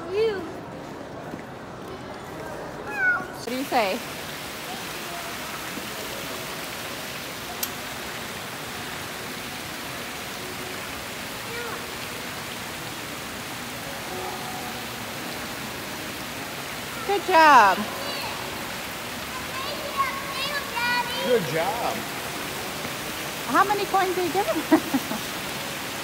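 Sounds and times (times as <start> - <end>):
fountain water splashing into pool: 0.1 - 26.0.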